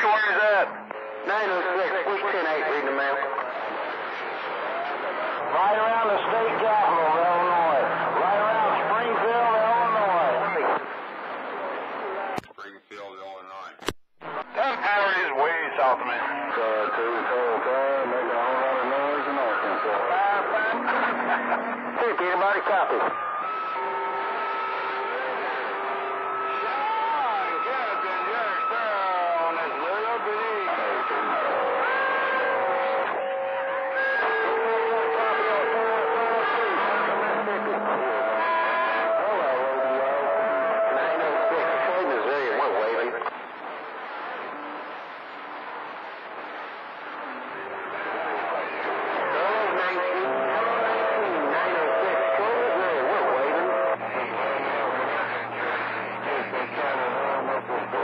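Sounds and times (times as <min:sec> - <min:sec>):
warbling garbled radio voices: 0:00.0 - 0:23.2
garbled radio signal: 0:00.0 - 0:58.0
distant radio speech: 0:11.7 - 0:23.5
radio click: 0:12.4 - 0:12.6, 0:13.7 - 0:14.5.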